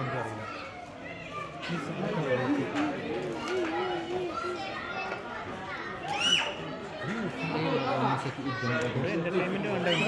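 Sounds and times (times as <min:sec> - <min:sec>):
children calling out and chattering: 0:00.0 - 0:10.0.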